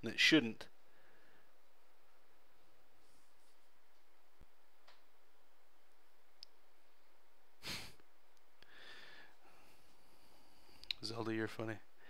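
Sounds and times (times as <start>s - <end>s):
faint clicks: 10.8s - 11.0s.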